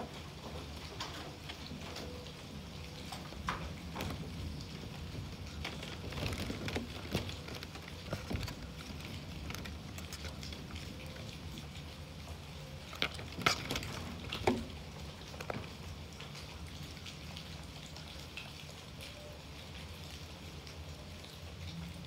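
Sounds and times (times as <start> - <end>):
soft rustling of handling: 5.0 - 11.4.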